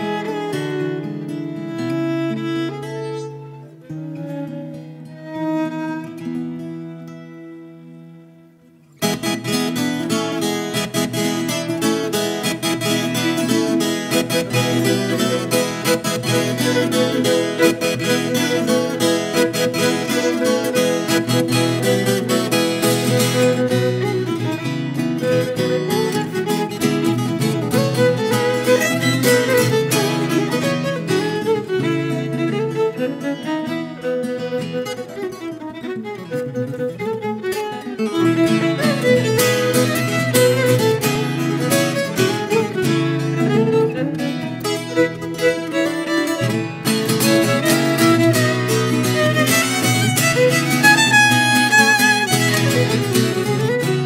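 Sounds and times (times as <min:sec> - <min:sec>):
bowed violin: 0:00.0 - 0:08.3, 0:09.0 - 0:54.0
viola strummed and picked: 0:00.0 - 0:54.0.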